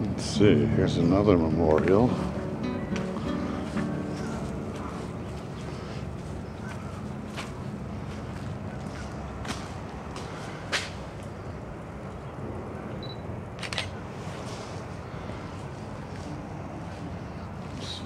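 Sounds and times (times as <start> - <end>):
camera handling clicks: 13.6 - 14.0.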